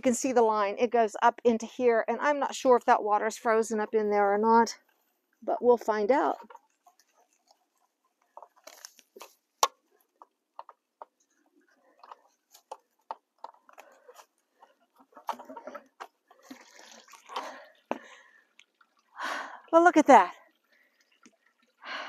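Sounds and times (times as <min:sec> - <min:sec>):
water splashing and gurgling: 0:05.5 - 0:22.0.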